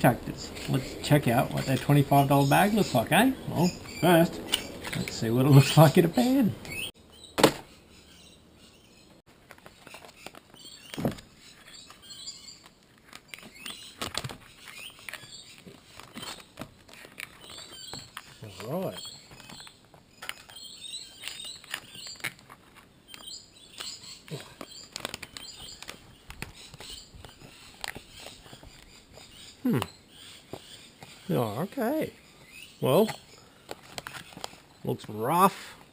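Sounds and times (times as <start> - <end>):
foil pouch crinkling: 20.3 - 28.9.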